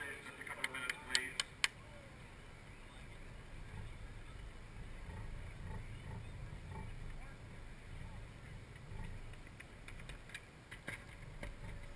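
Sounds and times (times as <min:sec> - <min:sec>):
sharp clicks: 0:00.4 - 0:01.8.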